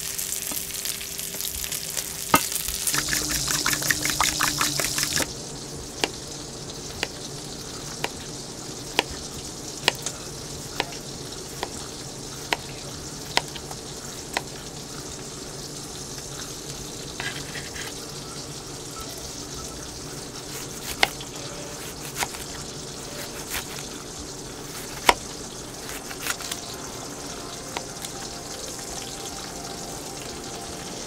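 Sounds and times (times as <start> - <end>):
steady sizzling hiss: 0.0 - 31.0.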